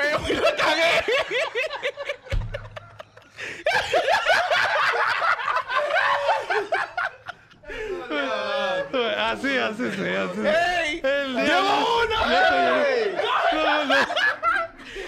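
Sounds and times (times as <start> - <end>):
men laughing: 0.0 - 15.0.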